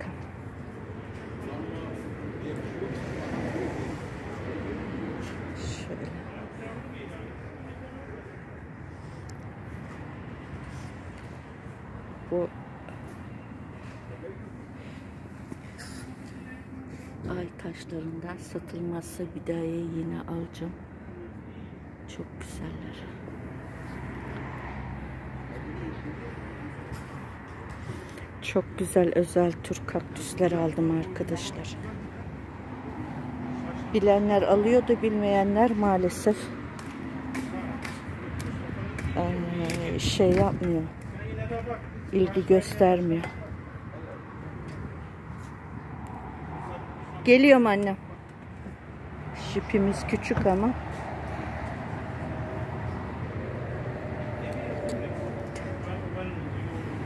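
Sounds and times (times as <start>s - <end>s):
steady background noise: 0.0s - 57.0s.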